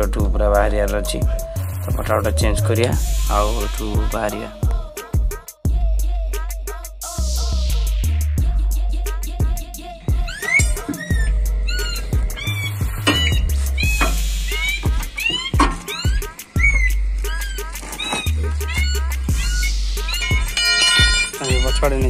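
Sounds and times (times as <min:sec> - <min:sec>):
music with deep bass line: 0:00.0 - 0:22.0
high swooping cries: 0:09.7 - 0:22.0.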